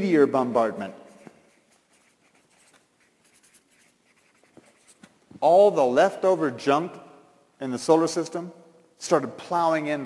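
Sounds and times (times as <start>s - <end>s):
marker scratching on paper: 0.8s - 5.2s.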